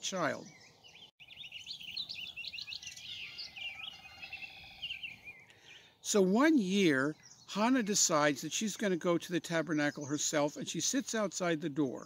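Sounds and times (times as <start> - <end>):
songbirds chirping and warbling: 0.0 - 12.0.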